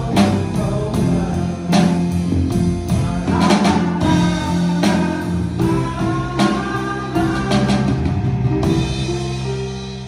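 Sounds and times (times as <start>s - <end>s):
drum kit beating: 0.0s - 10.0s
live rock band playing: 0.0s - 10.0s.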